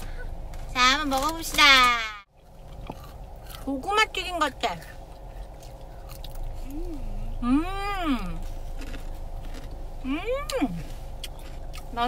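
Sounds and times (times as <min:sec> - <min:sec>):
person chewing crunchy food: 0:02.3 - 0:03.7, 0:05.0 - 0:07.1, 0:08.3 - 0:12.0.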